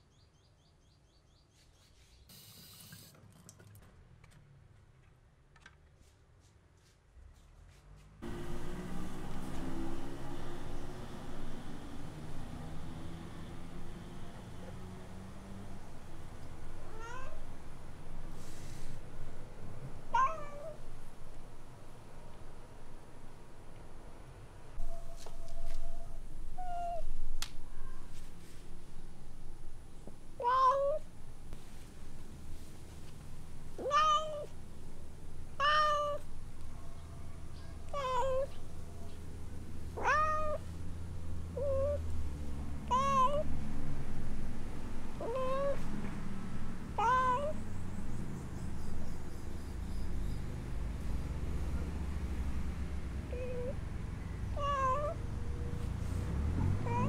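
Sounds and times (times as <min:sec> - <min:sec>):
cat meowing: 0:16.8 - 0:17.5, 0:20.1 - 0:20.8, 0:26.6 - 0:27.1, 0:30.4 - 0:31.0, 0:33.8 - 0:34.5, 0:35.6 - 0:36.2, 0:37.9 - 0:38.6, 0:40.0 - 0:40.6, 0:41.6 - 0:42.0, 0:42.9 - 0:43.5, 0:45.2 - 0:45.8, 0:47.0 - 0:47.6, 0:53.3 - 0:53.8, 0:54.5 - 0:55.2.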